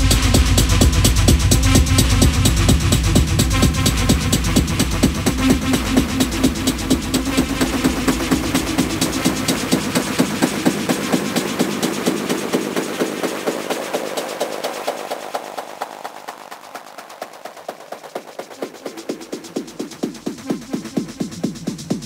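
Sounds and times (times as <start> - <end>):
techno music: 0.0 - 22.0.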